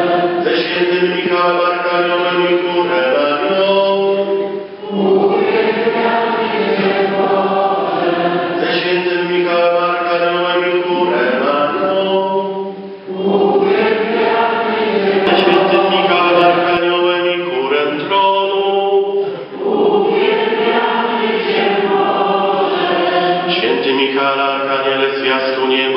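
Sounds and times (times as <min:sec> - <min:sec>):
congregation chanting in unison: 0:00.0 - 0:25.9
low held drone note: 0:15.2 - 0:17.0.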